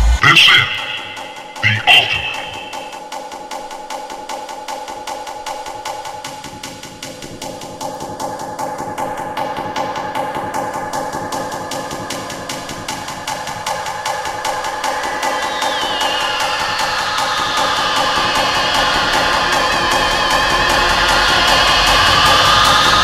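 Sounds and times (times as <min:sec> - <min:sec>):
fast percussive techno hits: 0:00.0 - 0:23.0.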